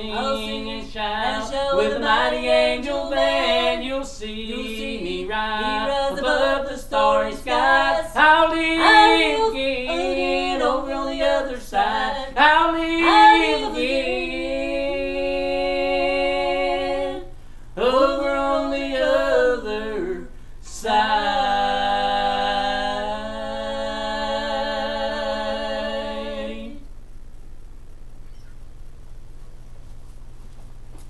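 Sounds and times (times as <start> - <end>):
woman and man singing in harmony: 0.0 - 26.9.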